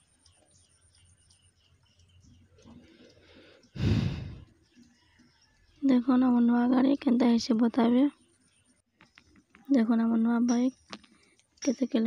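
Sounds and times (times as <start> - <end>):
person sighing: 3.8 - 4.4.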